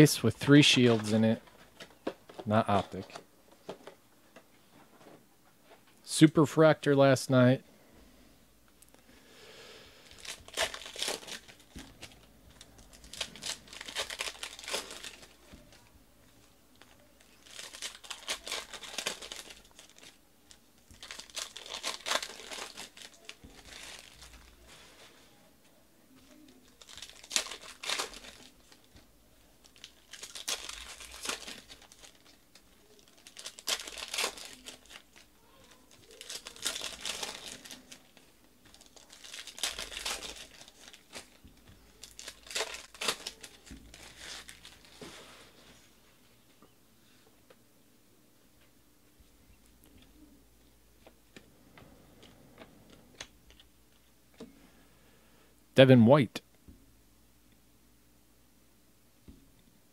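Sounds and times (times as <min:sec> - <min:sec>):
foil wrappers crinkling and tearing: 0:00.5 - 0:03.2, 0:10.0 - 0:25.2, 0:26.3 - 0:45.8.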